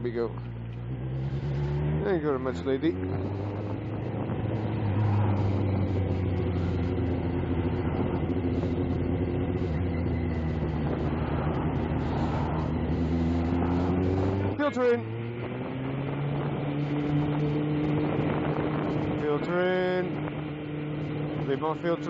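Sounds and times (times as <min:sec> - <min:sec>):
motorbike engine running: 0:00.0 - 0:22.0
road noise: 0:00.0 - 0:22.0.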